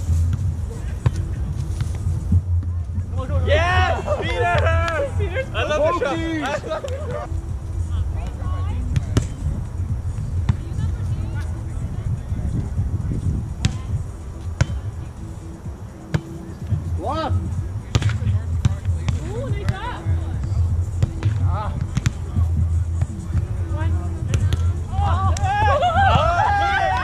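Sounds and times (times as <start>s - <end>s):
steady low rumble: 0.0s - 16.0s, 16.6s - 27.0s
players shouting calls: 3.4s - 7.3s, 24.5s - 27.0s
overlapping voices: 3.5s - 7.4s, 24.8s - 27.0s.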